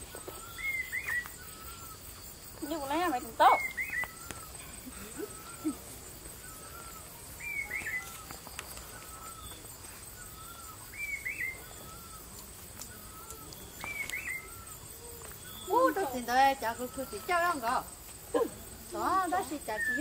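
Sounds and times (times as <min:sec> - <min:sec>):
bird singing high call: 0:00.1 - 0:17.8, 0:18.5 - 0:20.0.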